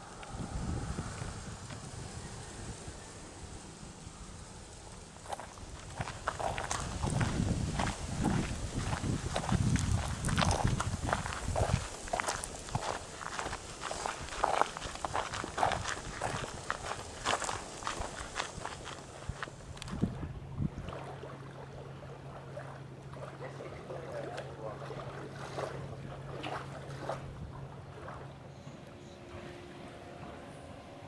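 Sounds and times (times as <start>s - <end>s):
low rumble: 0.0s - 11.9s
footsteps on sandy dirt track: 5.2s - 20.3s.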